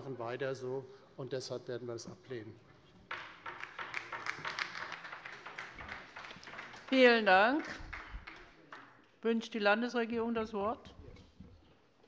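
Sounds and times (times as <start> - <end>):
applause: 3.1 - 9.0.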